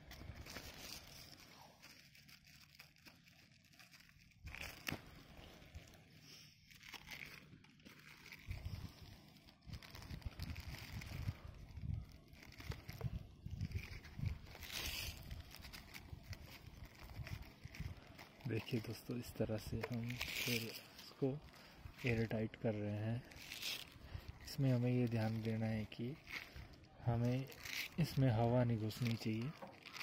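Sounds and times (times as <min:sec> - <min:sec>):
plastic tape crinkling: 0:00.0 - 0:30.0.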